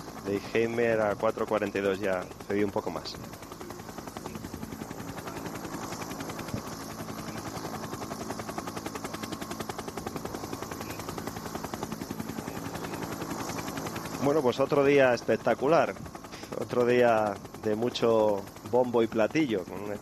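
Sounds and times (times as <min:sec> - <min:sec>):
helicopter rotor chopping: 0:00.0 - 0:20.0.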